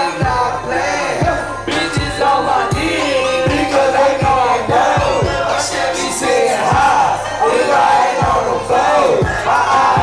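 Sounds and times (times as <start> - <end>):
crowd noise: 0.0 - 10.0
loud beat with deep bass: 0.0 - 10.0
rappers shouting into microphones: 0.0 - 10.0.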